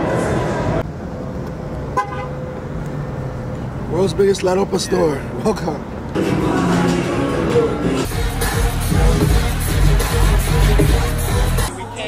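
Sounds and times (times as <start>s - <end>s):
city street traffic: 0.0s - 12.0s
car horn toot: 1.9s - 2.4s.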